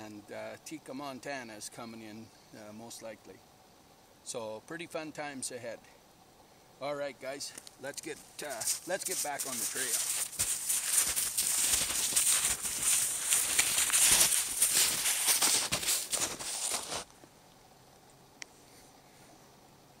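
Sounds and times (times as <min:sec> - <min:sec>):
snowshoe footsteps crunching snow: 0:08.1 - 0:17.1.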